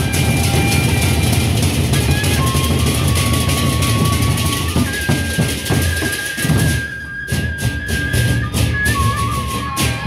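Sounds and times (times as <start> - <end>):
barrel drums beaten in rolling rhythm: 0.0 - 10.0.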